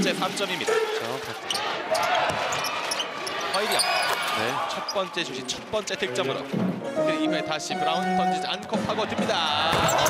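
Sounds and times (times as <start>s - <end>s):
crowd voices: 0.0s - 7.4s, 8.0s - 10.0s.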